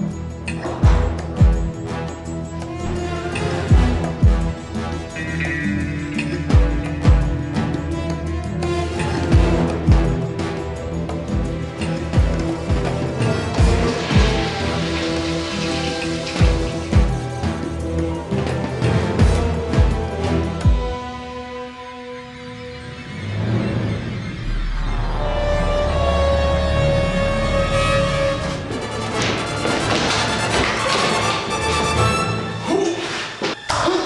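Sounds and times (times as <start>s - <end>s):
background music: 0.0s - 34.0s
crashing hits: 13.0s - 17.4s
toilet flush water rush: 13.4s - 17.6s.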